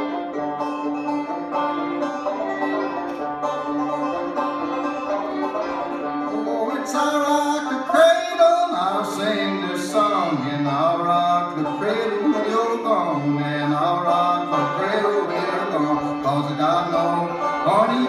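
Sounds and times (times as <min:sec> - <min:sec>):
banjo picking: 0:00.0 - 0:18.0
sliding fiddle melody: 0:00.0 - 0:18.0.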